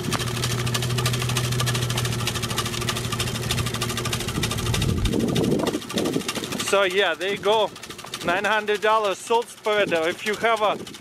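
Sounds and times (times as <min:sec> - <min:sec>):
rock salt crackling on asphalt: 0:00.0 - 0:10.8
truck and spinner motor hum: 0:00.0 - 0:11.0.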